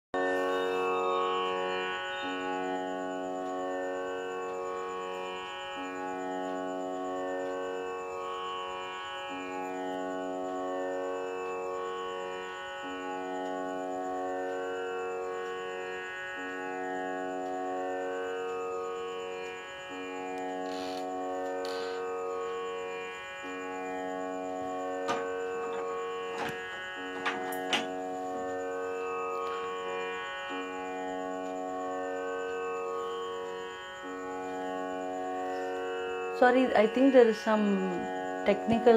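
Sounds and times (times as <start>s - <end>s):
tanpura drone: 0.2s - 38.9s.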